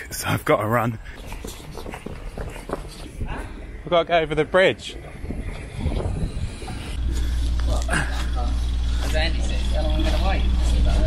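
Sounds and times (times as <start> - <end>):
boat engine idling: 7.0 - 11.0.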